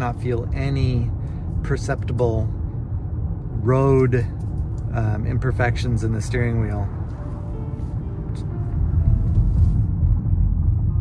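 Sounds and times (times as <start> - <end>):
tyre and drivetrain rumble in car cabin: 0.0 - 11.0.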